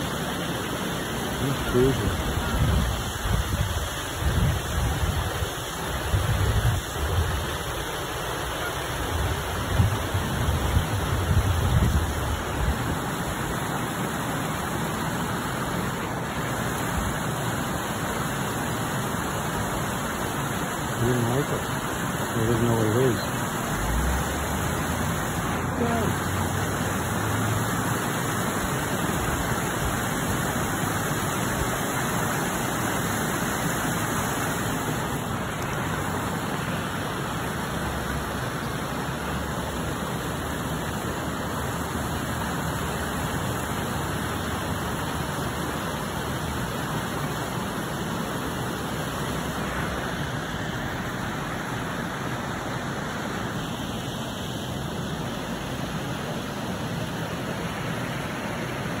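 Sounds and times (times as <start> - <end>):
steady rushing outdoor noise: 0.0 - 59.0.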